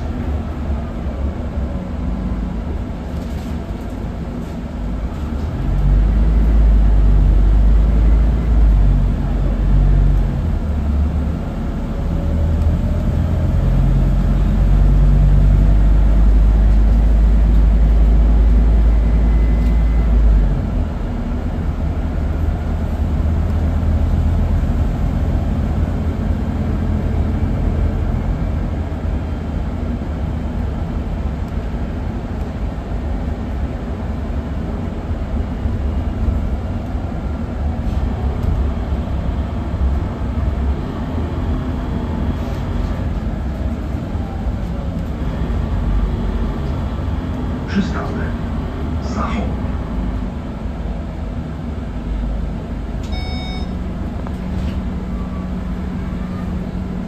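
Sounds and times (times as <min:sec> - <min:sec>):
bus engine drone: 0:00.0 - 0:57.0
road noise: 0:00.0 - 0:57.0.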